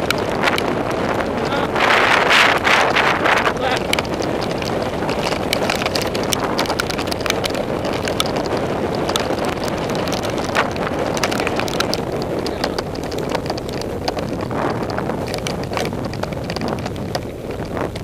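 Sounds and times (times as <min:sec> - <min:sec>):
bike rattling over rocks: 0:00.0 - 0:18.0
wind on microphone: 0:00.0 - 0:18.0.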